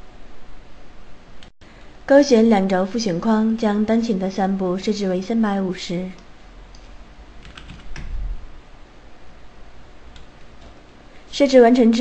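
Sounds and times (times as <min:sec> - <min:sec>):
computer keyboard keystrokes: 0:07.4 - 0:08.1.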